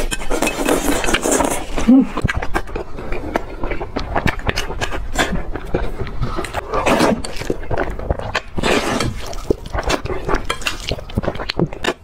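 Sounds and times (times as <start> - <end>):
slurping noodles: 0.0 - 2.2, 2.9 - 12.0
wet chewing and smacking: 0.0 - 12.0.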